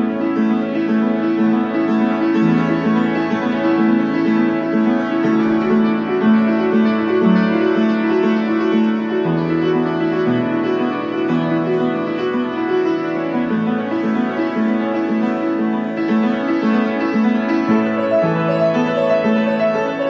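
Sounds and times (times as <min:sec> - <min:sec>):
solo piano piece: 0:00.0 - 0:20.0.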